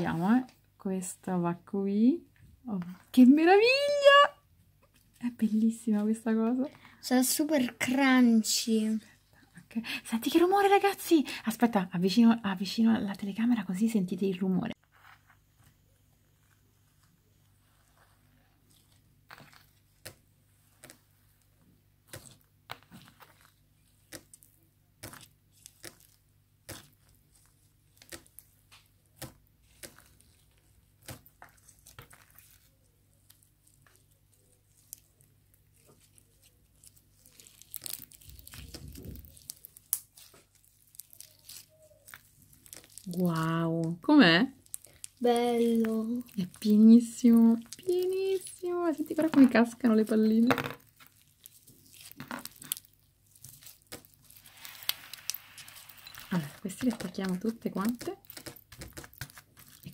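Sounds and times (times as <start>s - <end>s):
slime with foam beads crackling: 0.0s - 4.4s, 5.0s - 59.9s.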